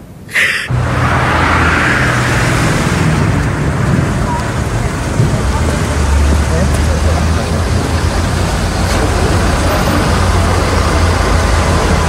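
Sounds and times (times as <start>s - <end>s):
road traffic engine hum: 0.0s - 12.0s.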